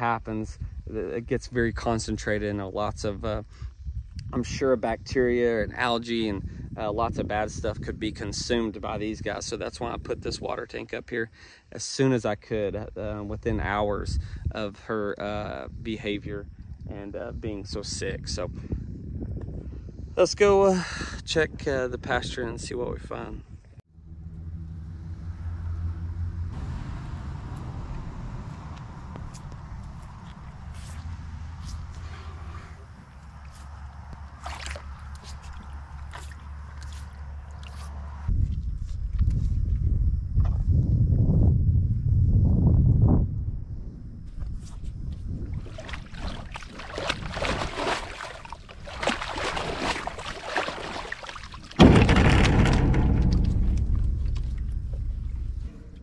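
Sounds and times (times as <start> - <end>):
steady low rumble: 23.3 - 45.7, 51.8 - 56.0
water sloshing and gurgling: 24.1 - 39.4, 44.4 - 56.0
loud water splash: 34.3 - 36.5, 45.6 - 56.0.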